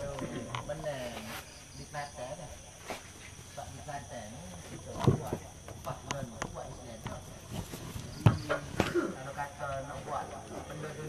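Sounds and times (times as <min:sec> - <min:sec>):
night insects chirring: 0:00.0 - 0:11.0
people chatting: 0:00.0 - 0:11.0.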